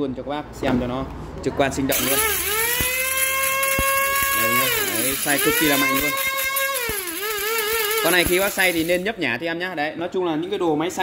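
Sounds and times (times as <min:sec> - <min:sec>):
electric grinder whining: 0:02.0 - 0:09.0
sharp ticks: 0:02.0 - 0:09.1.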